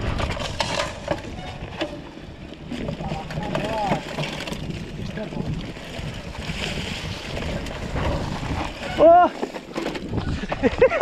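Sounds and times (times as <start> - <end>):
tyre rumble on dirt and leaves: 0.0 - 11.0
wind buffeting microphone: 0.0 - 11.0
person yelling: 9.0 - 9.4.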